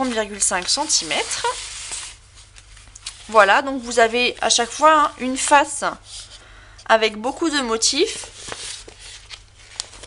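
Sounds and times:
paper sheets rustling: 0:00.0 - 0:06.3, 0:07.7 - 0:10.0.

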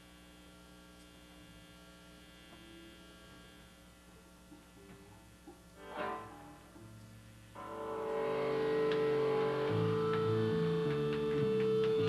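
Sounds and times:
held high guitar note: 0:05.8 - 0:06.9, 0:07.6 - 0:12.0
picked guitar notes: 0:05.8 - 0:12.0.

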